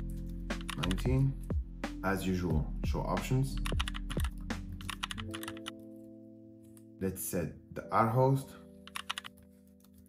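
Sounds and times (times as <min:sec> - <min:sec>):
soft background music: 0:00.0 - 0:10.0
computer keyboard typing: 0:00.2 - 0:01.2, 0:03.6 - 0:05.8, 0:08.9 - 0:10.0.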